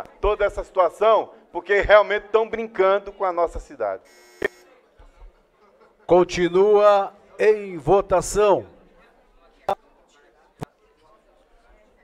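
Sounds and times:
faint electronic buzzer: 4.0s - 4.8s.

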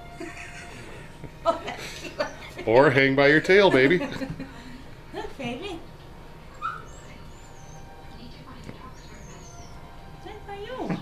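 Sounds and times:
monkey squeaking calls: 6.5s - 8.0s.

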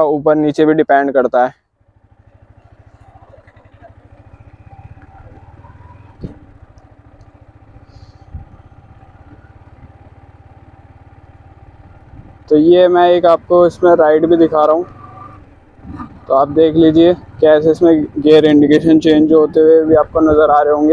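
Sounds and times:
motorcycle engine running: 0.4s - 20.9s.

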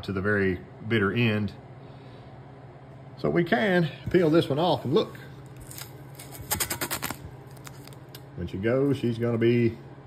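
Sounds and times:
tape peeling off metal: 5.5s - 8.1s
crackling tape rip: 5.5s - 8.2s.

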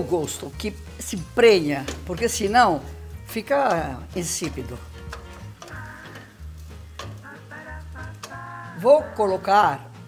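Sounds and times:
wooden spoon stirring: 0.0s - 9.3s
background music: 0.0s - 10.0s
rice and onion sizzling: 0.0s - 10.0s.

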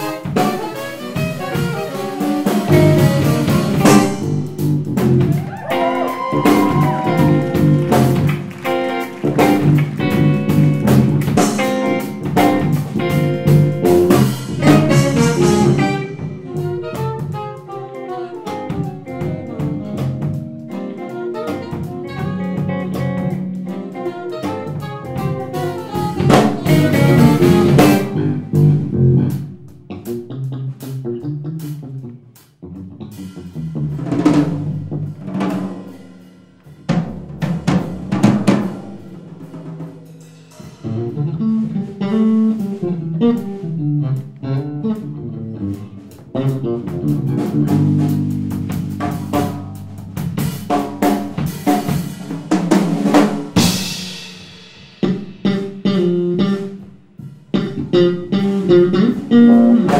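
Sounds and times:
electric guitar: 0.0s - 39.8s, 40.6s - 59.9s
drum kit: 0.0s - 59.9s
jazz-rock band playing: 0.0s - 59.9s.

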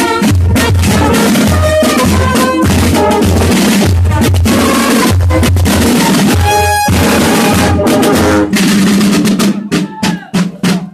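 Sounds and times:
brass band tune: 0.0s - 10.0s
side drums beating: 0.0s - 10.9s.

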